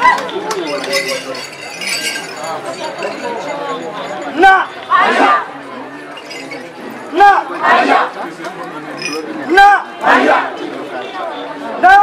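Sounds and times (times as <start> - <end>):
group chanting and calling out: 0.0 - 12.0.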